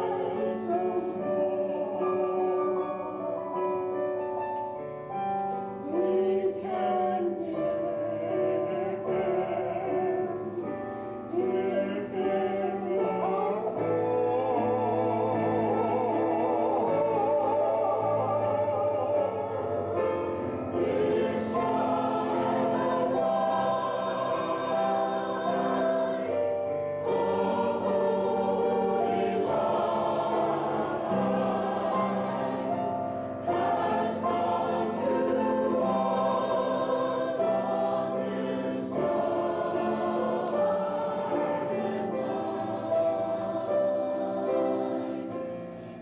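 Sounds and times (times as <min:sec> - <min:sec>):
choir singing: 0:00.0 - 0:04.2, 0:05.4 - 0:46.0.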